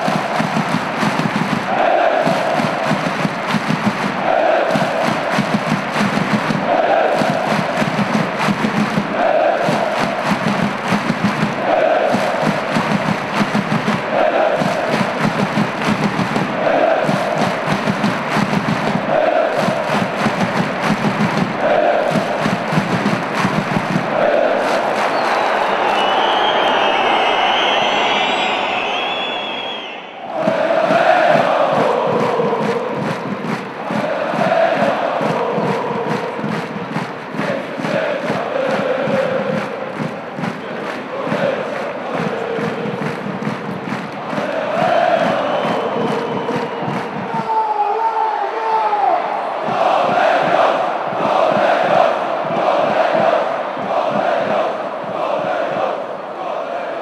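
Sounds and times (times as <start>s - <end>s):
crowd chanting in unison: 0.0s - 57.0s.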